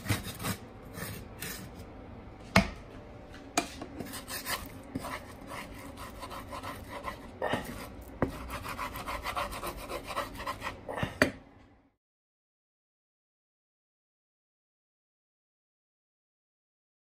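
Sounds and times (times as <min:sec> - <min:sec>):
wooden spatula scraping a pan: 0:04.0 - 0:10.8.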